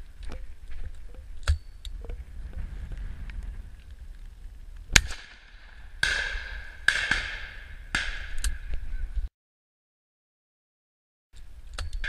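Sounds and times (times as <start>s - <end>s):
shotgun shot with echo: 5.0s - 8.4s.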